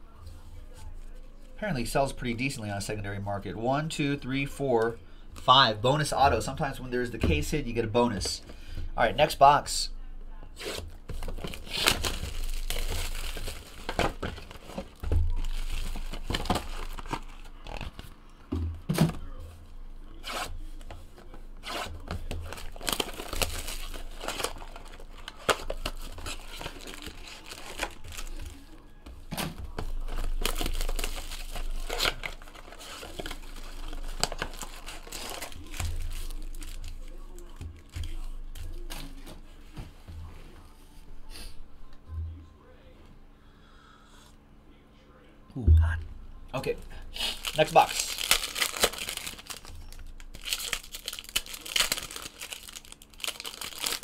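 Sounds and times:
card packs tearing and crinkling: 0:10.6 - 0:18.2, 0:20.1 - 0:39.4, 0:47.1 - 0:54.0.

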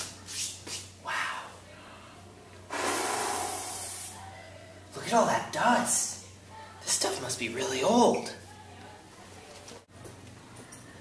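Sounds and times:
aerosol spray can hissing: 0:02.7 - 0:04.2.

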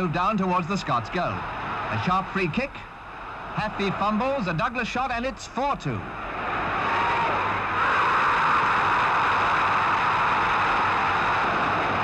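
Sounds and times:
stadium crowd roaring: 0:00.0 - 0:12.0.

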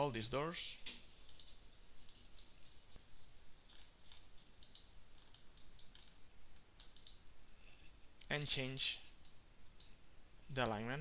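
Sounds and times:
computer mouse clicking: 0:00.9 - 0:02.6, 0:03.7 - 0:07.2, 0:09.2 - 0:10.0.

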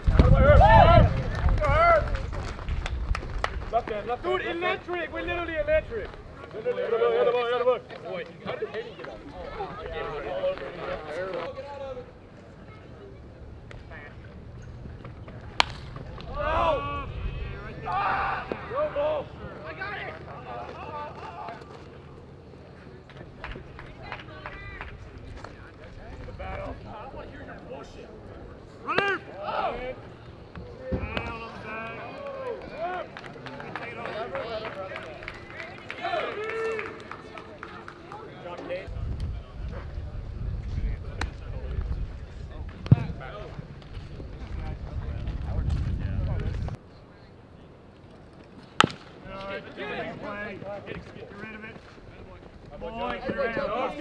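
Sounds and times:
low wind rumble: 0:00.0 - 0:06.4, 0:13.1 - 0:19.6, 0:38.9 - 0:46.9
held shout: 0:00.3 - 0:02.1, 0:16.3 - 0:20.0
players calling out: 0:04.0 - 0:38.9
bat cracking against ball: 0:15.3 - 0:16.4, 0:48.7 - 0:49.2
baseball popping into mitt: 0:48.8 - 0:49.1.

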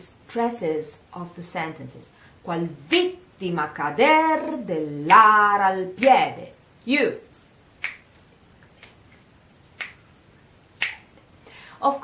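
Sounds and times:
finger snaps: 0:07.8 - 0:10.1, 0:10.8 - 0:11.3.

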